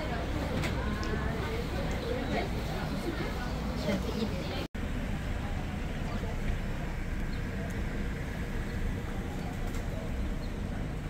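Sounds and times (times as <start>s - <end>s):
faint indistinct voices: 0.0s - 11.0s
steady low rumble: 4.7s - 11.0s.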